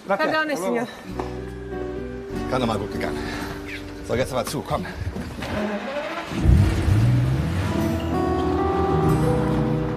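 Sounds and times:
music: 0.4 - 5.4, 6.6 - 9.9
car engine revving: 5.5 - 8.0.

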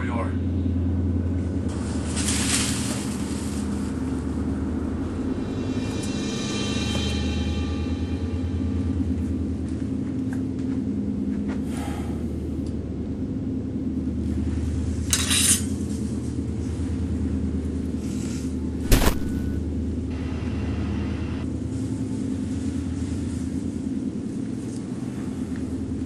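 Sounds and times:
low rumbling drone: 0.0 - 15.2, 15.8 - 26.0
rustling hiss: 1.7 - 4.5
sharp click: 18.8 - 19.6.

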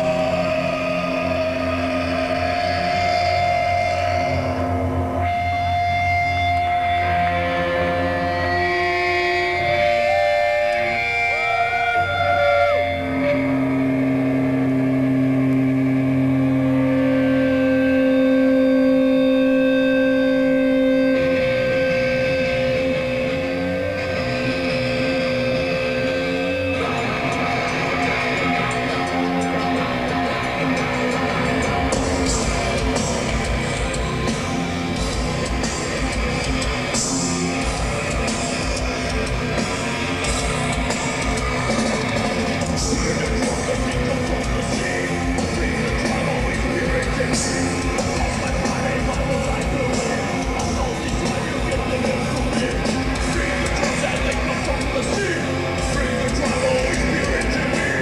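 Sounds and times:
electric guitars sustained notes: 0.0 - 58.0.

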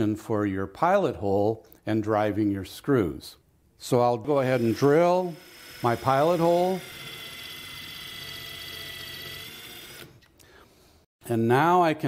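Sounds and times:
cordless drill motor whine: 4.6 - 10.3.

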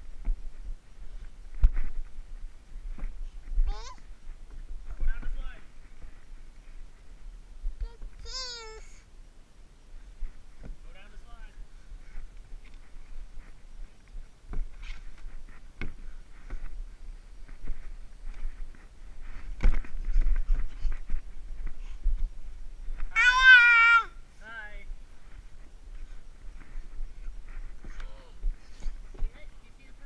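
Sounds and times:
short high-pitched vocal cry: 23.1 - 24.2.

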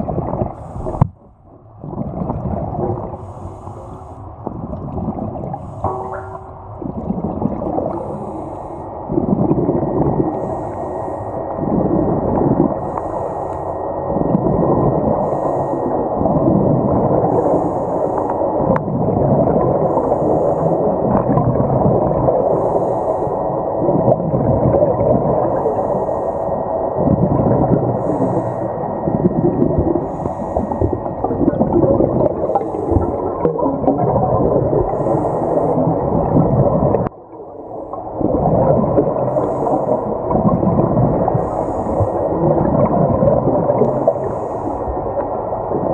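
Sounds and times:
air bubbles gurgling underwater: 0.0 - 3.3, 4.4 - 8.3, 9.1 - 10.6, 11.5 - 13.0, 14.1 - 22.7, 23.6 - 25.8, 26.9 - 45.9.

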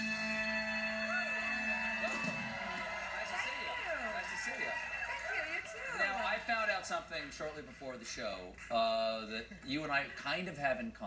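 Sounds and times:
talk show voices: 1.0 - 11.0.

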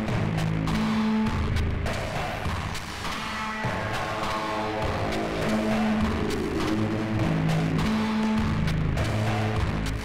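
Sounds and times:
low synth tones: 4.2 - 8.2.

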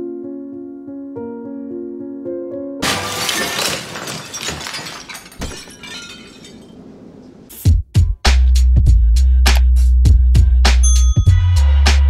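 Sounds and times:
glass shattering: 2.8 - 7.4.

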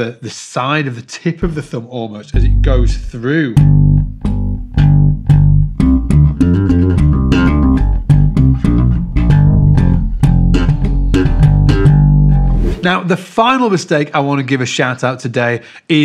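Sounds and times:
slap bass guitar: 1.4 - 1.7, 2.3 - 12.8.

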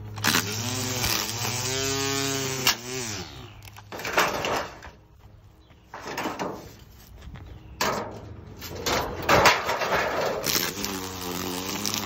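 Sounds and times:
string trimmer cutting grass: 0.0 - 4.9, 9.9 - 12.0.

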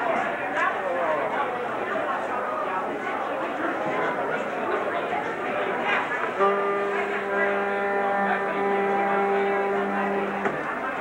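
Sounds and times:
electronic keyboard held note: 6.4 - 10.5.

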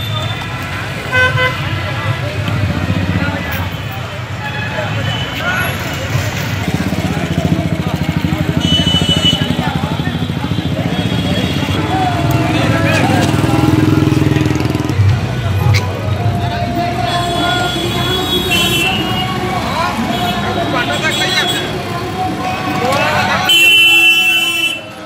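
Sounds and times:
motorcycle engines running: 0.0 - 25.0
people's voices: 0.0 - 25.0
horn toots: 8.3 - 21.9, 23.3 - 25.0.

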